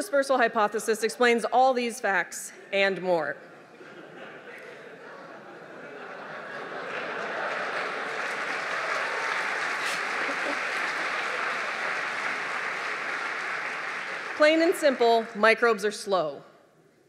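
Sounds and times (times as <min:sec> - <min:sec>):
audience applauding: 0:06.4 - 0:15.4.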